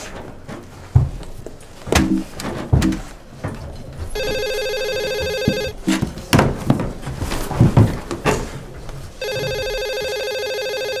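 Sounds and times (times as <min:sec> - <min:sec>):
electronic telephone ringing: 0:04.2 - 0:05.8, 0:09.2 - 0:11.0.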